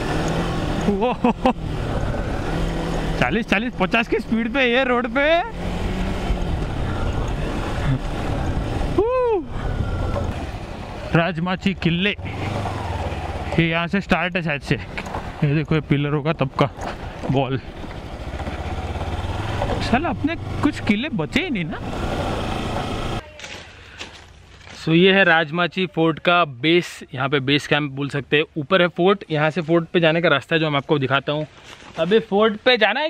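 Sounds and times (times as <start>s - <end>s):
motorcycle engine cruising: 0.0s - 23.3s
tyres on dirt trail: 0.0s - 33.0s
wind: 0.0s - 33.0s.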